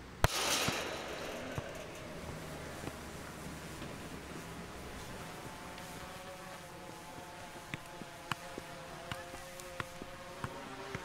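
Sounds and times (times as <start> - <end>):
football striking goal net: 0.2 - 4.4
goal mesh rattling: 0.2 - 11.0.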